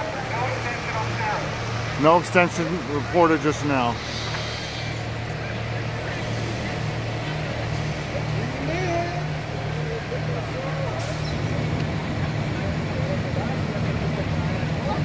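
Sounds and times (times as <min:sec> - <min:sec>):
diesel engine low drone: 0:00.0 - 0:15.0
faint voices: 0:00.0 - 0:15.0.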